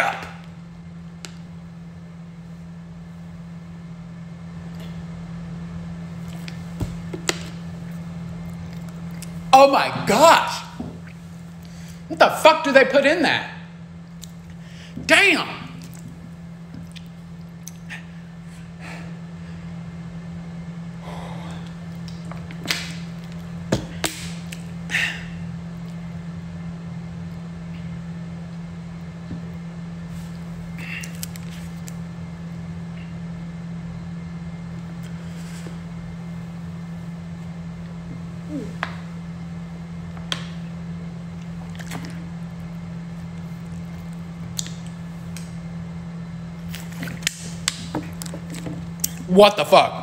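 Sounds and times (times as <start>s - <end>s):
steady low hum: 0.0s - 50.0s
person swallowing a drink: 41.5s - 42.3s.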